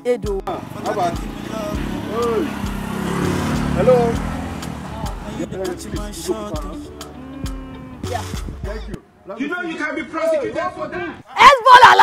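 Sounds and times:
street noise: 0.0 - 12.0
motorcycle engine idling: 0.5 - 6.9
person calling out: 7.0 - 8.4.

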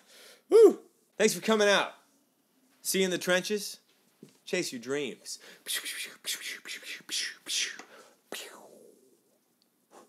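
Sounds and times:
man whispering: 5.2 - 9.3.

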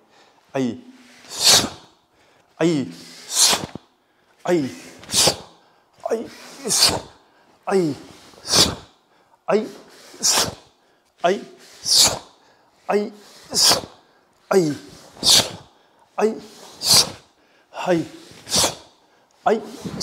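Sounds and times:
sharp hissing exhalations: 0.9 - 2.0, 2.9 - 3.8, 4.7 - 9.0, 9.7 - 10.8, 11.4 - 14.2, 14.8 - 15.8, 16.4 - 19.0.

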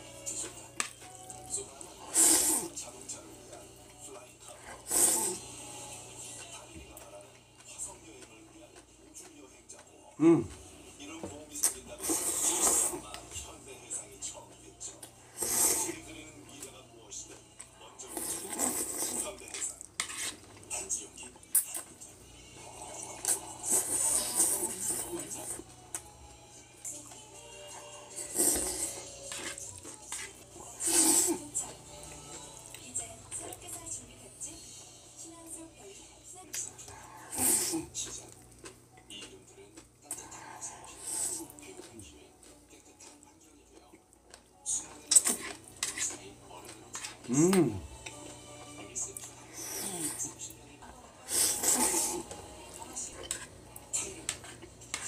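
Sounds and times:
noodles being slurped and chewed: 0.1 - 10.7, 11.5 - 13.6, 14.4 - 17.4, 18.0 - 26.0, 27.0 - 33.8, 36.5 - 43.3, 44.0 - 50.5, 51.2 - 55.0
person slurping noodles: 2.0 - 2.8, 4.7 - 5.4, 12.0 - 13.0, 15.3 - 16.0, 18.1 - 19.2, 23.2 - 25.6, 28.2 - 29.5, 30.8 - 31.5, 37.2 - 37.9, 40.8 - 41.6, 49.6 - 50.2, 51.3 - 52.3.

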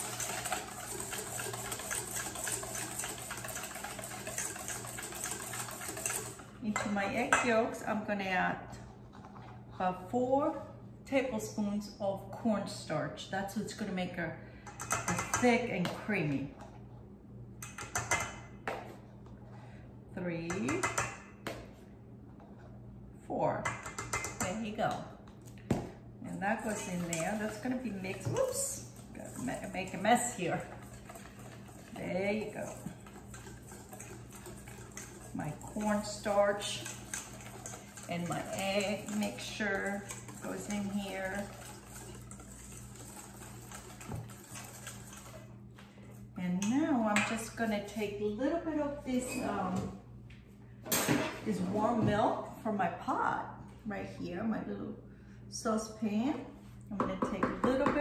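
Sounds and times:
whisk tapping a metal bowl: 0.0 - 7.6, 14.7 - 15.5, 17.6 - 18.4, 20.5 - 21.2, 23.6 - 24.5, 26.3 - 45.4.

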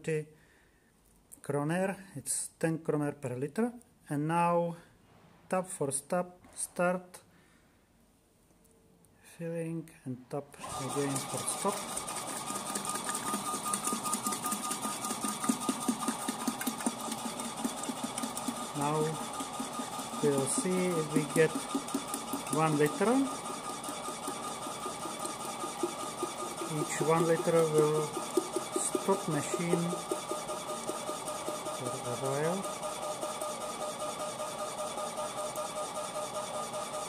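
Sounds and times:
pump chattering: 10.6 - 37.0
vending machine mechanical whine: 10.6 - 37.0
milk pouring into bottle: 10.7 - 35.8.

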